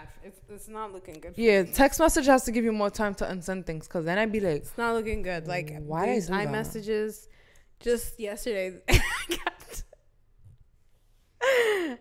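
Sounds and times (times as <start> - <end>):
woman sighing: 11.4 - 12.0.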